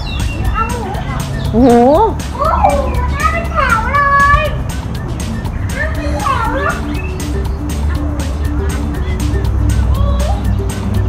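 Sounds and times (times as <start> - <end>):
background music with quick beat: 0.0 - 11.0
children calling out: 0.4 - 4.8, 5.7 - 10.8.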